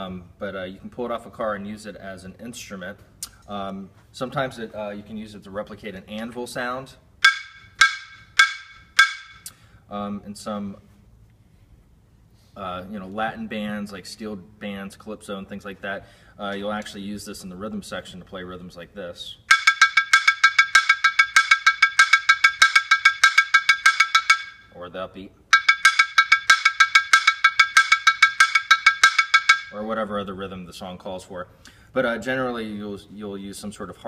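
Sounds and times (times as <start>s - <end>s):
mallet striking metal brake drum: 7.2s - 9.5s, 19.5s - 24.7s, 25.6s - 29.9s.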